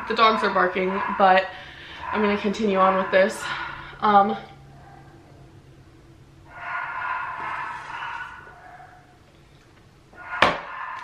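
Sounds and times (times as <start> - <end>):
muffled dogs barking: 0.0 - 5.6, 6.5 - 9.2, 10.2 - 11.0.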